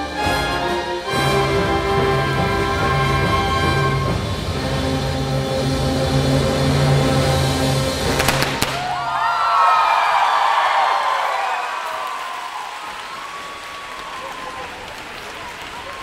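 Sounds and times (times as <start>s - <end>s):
confetti cannon pops: 8.1s - 9.0s
crowd cheering and whooping: 8.8s - 16.0s.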